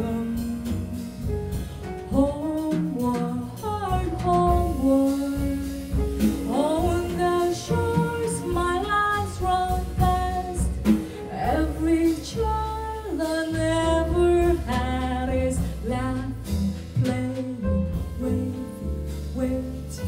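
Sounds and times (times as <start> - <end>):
jazz band with upright bass: 0.0 - 20.0
woman singing jazz: 0.0 - 20.0.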